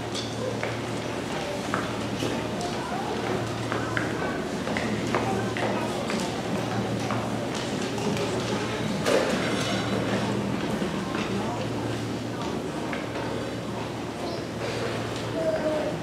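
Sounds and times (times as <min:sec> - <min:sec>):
murmur of voices: 0:00.0 - 0:16.0.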